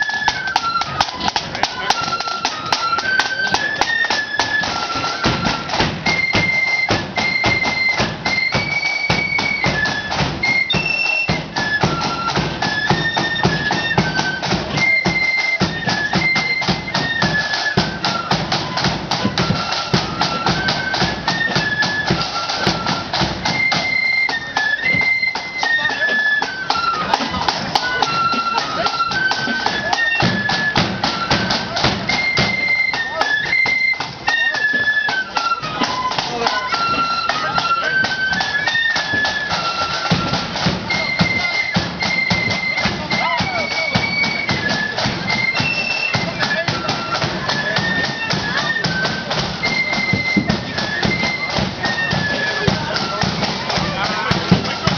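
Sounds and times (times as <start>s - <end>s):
flutes playing marching tune: 0.0s - 54.9s
side drums marching rhythm: 0.0s - 54.9s.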